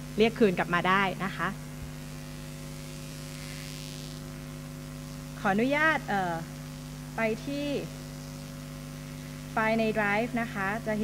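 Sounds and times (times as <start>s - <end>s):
electrical mains hum: 0.0s - 11.0s
woman speaking: 0.2s - 1.6s, 5.4s - 6.5s, 7.2s - 7.9s, 9.6s - 11.0s.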